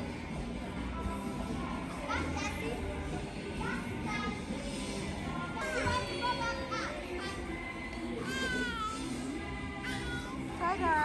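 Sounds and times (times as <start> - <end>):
background music: 0.0 - 11.0
hubbub of busy play hall: 0.0 - 11.0
children squealing and calling: 8.2 - 10.5.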